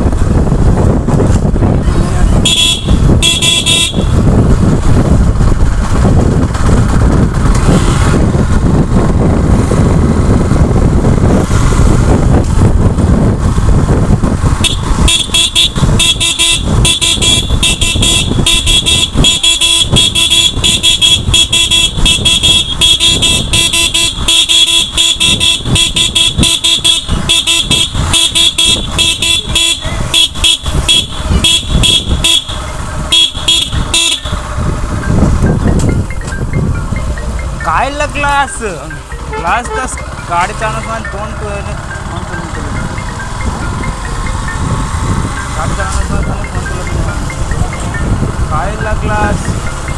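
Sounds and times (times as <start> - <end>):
motorcycle engine: 0.0 - 49.9
wind rumbling on microphone: 0.0 - 49.9
horn blasts: 2.4 - 4.2, 14.6 - 34.5, 39.2 - 40.1.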